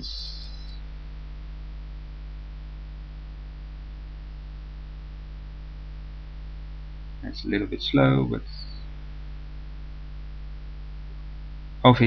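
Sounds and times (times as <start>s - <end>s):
faint hiss: 0.0s - 10.4s
electrical mains hum: 0.0s - 12.0s.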